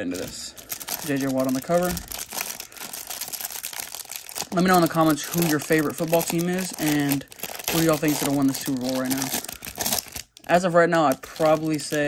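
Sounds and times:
plastic wrapper crinkling: 0.0s - 12.0s.

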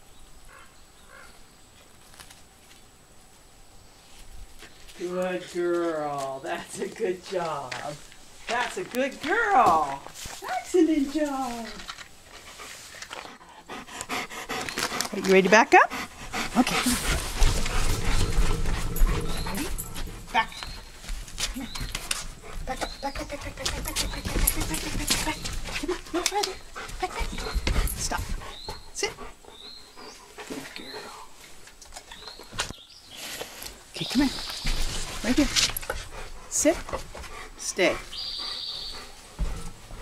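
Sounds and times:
dog panting: 12.3s - 31.4s, 34.6s - 40.0s
dog whimpering: 18.2s - 20.6s.

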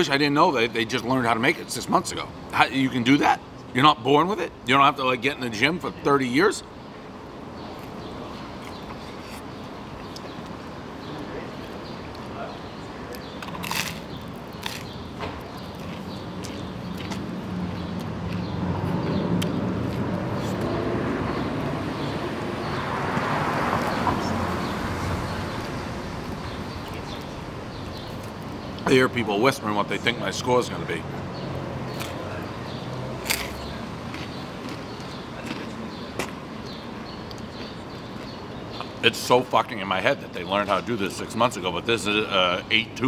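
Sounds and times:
people murmuring and whispering: 11.0s - 13.6s.

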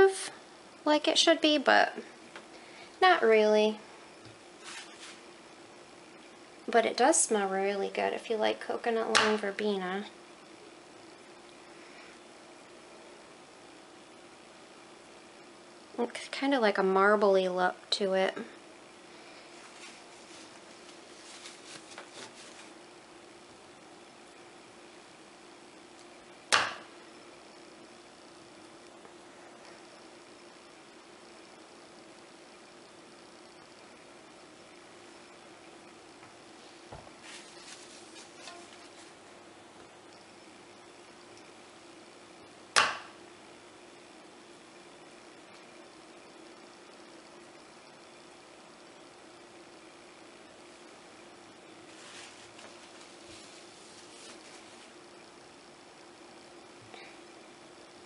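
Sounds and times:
faint steady hum: 0.0s - 58.0s.

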